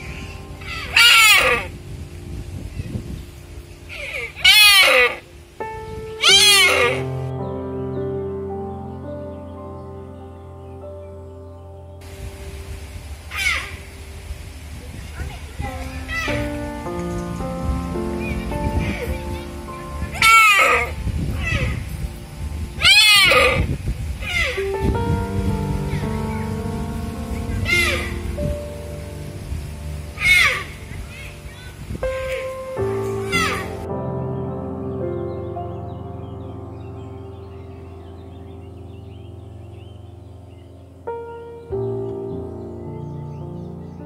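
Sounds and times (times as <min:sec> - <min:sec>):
background music: 0:00.0 - 0:44.0
deer calls: 0:00.7 - 0:01.7, 0:03.9 - 0:05.2, 0:06.2 - 0:07.1, 0:22.8 - 0:24.6, 0:27.6 - 0:28.1, 0:30.2 - 0:32.4
deer bleating: 0:00.9 - 0:01.7, 0:06.2 - 0:07.1.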